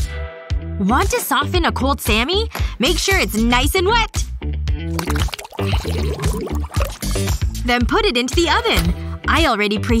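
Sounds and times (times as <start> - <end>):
background music: 0.0 - 10.0
water splashing and sloshing: 4.9 - 7.5.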